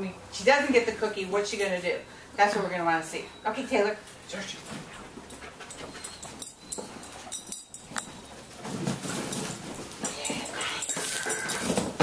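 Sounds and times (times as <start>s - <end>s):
dog whining: 10.0s - 11.8s.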